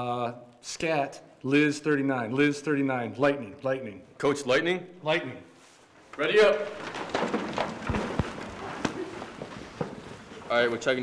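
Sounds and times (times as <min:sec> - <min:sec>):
footsteps of people: 0:05.8 - 0:11.0.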